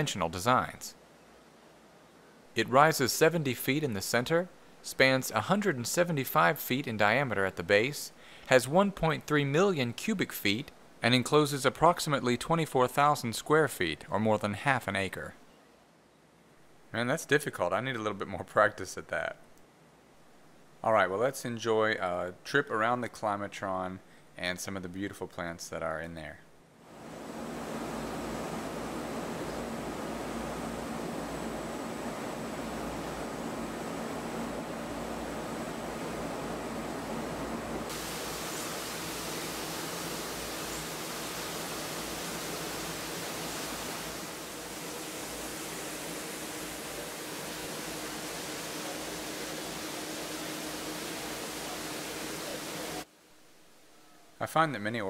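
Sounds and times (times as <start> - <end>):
faint steady hum: 0.0 - 55.0
indoor waterfall rushing: 37.9 - 53.1.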